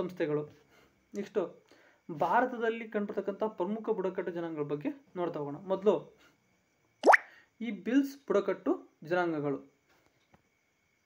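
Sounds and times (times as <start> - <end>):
phone alert rising bloop: 7.0 - 7.3.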